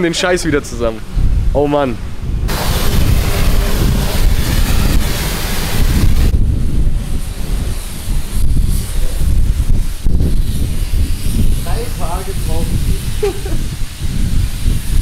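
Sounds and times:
wind buffeting microphone: 0.0 - 15.0
pressure washer spraying water: 2.5 - 15.0.

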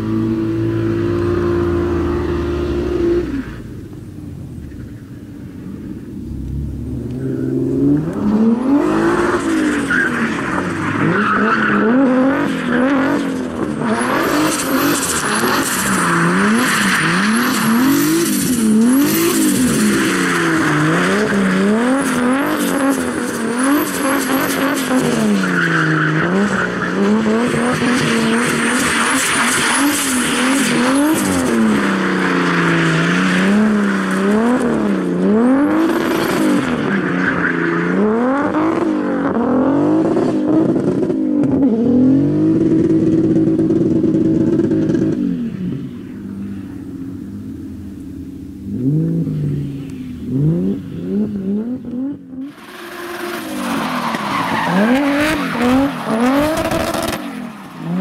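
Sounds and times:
car engine revving: 0.0 - 58.0
tyres squealing and skidding: 7.2 - 40.0, 52.4 - 58.0.

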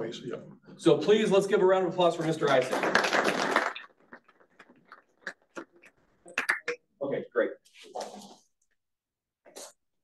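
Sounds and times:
faint scattered claps: 2.2 - 6.8.

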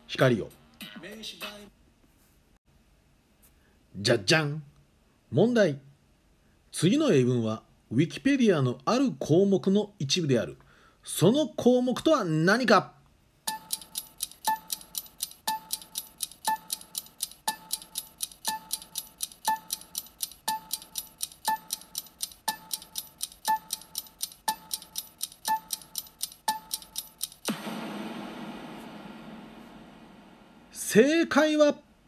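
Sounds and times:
short beeps: 13.5 - 14.9
fast clock-like ticking: 13.5 - 27.8
time-up sound effect: 27.5 - 30.8.

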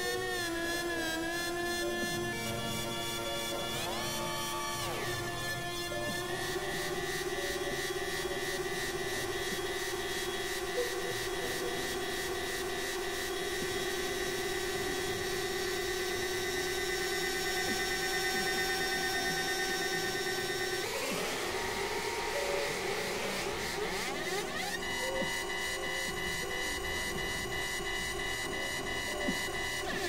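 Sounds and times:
synthesizer drone: 0.0 - 30.0.

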